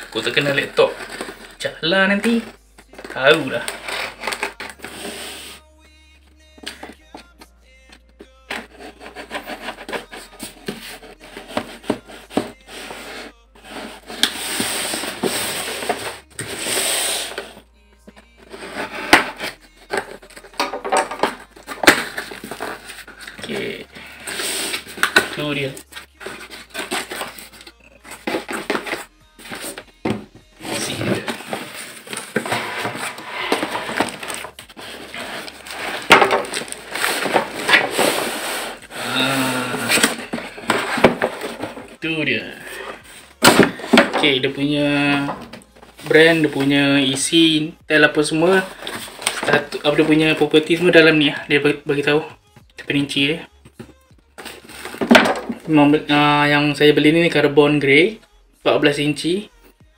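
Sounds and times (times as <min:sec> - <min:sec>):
cardboard scraping and rustling: 0:00.0 - 0:05.6, 0:08.5 - 0:47.3, 0:48.6 - 0:50.4, 0:53.8 - 0:55.7.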